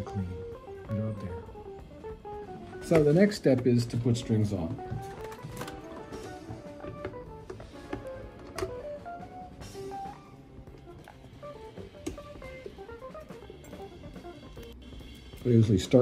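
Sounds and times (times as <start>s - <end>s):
plucked guitar music: 0.0s - 14.7s.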